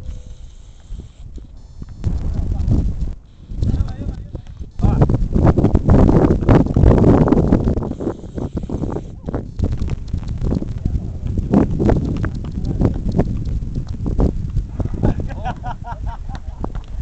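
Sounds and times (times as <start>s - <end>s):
heavy low rumble: 1.5s - 15.4s.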